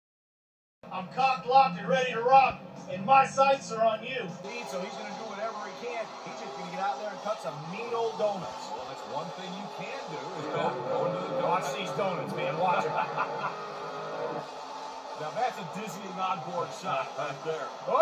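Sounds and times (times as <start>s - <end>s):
man talking on television: 0.9s - 13.9s, 15.0s - 18.0s
arena crowd din: 0.9s - 18.0s
monster truck engine revving: 4.4s - 18.0s.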